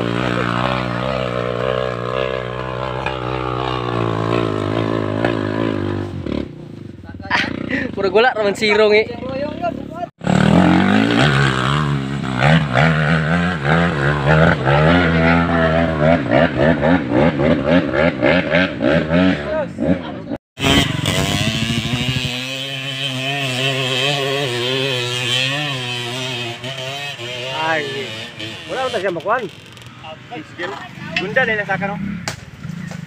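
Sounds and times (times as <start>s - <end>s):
motorcycle engine revving hard: 0.0s - 6.6s, 9.4s - 30.0s.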